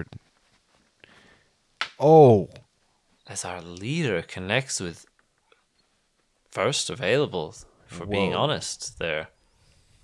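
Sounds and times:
faint rustle: 0.0 - 1.6, 5.0 - 6.7, 9.3 - 10.0.

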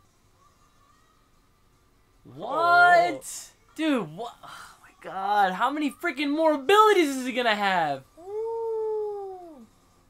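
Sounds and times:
cartoon character shouting a name: 2.3 - 4.2.

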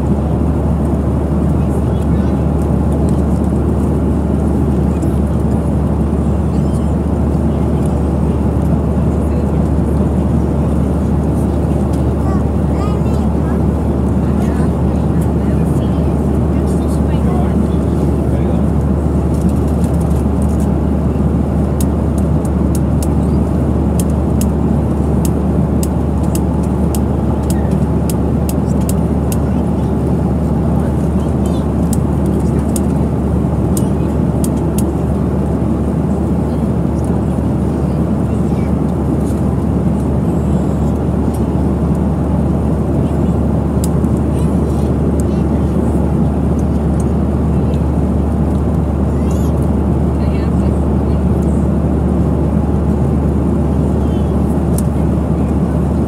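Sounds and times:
airliner cabin hum: 0.0 - 56.0.

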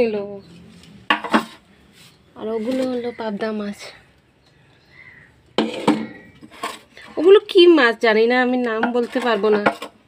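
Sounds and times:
person speaking: 2.3 - 4.2.

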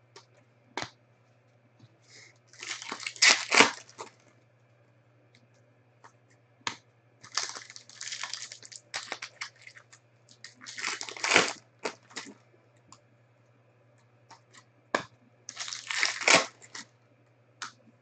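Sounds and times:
foil wrapper crinkling and tearing: 2.5 - 4.1, 7.2 - 12.3, 15.5 - 16.8.

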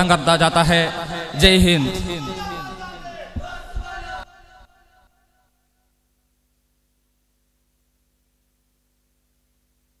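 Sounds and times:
men shouting together: 0.9 - 5.1.

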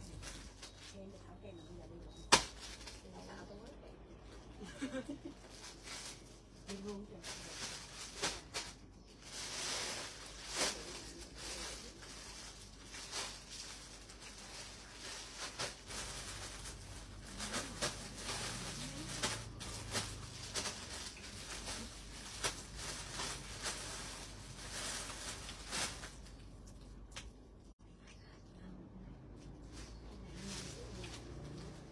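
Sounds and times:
clothes rustling: 4.6 - 27.2.

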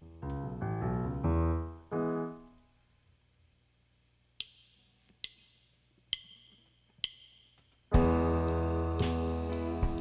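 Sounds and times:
drumsticks clicking together: 4.4 - 7.8
band playing loudly: 7.9 - 10.0.

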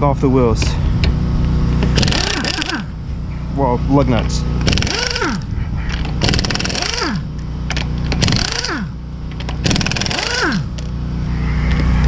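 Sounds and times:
pneumatic impact wrench hammering: 1.0 - 3.0, 4.6 - 11.0.

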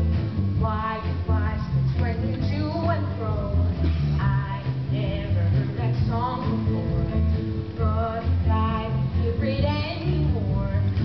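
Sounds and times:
bass line: 0.0 - 11.0
young voices singing doo-wop ballad: 0.0 - 11.0.

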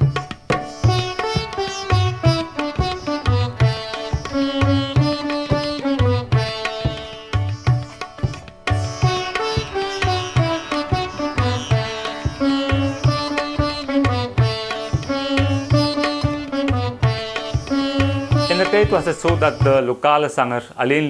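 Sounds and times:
violin: 0.0 - 20.2
sitar: 0.0 - 21.0.

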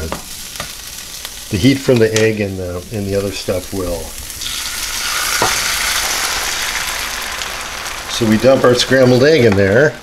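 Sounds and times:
egg sizzling in frying pan: 0.0 - 10.0.

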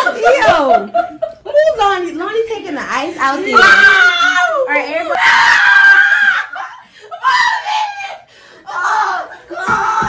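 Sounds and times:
children screaming and laughing: 3.5 - 10.0.

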